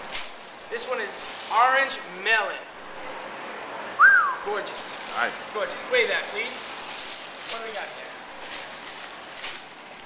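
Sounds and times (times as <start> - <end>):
plastic sleeve crinkling: 0.0 - 2.6, 4.5 - 10.0.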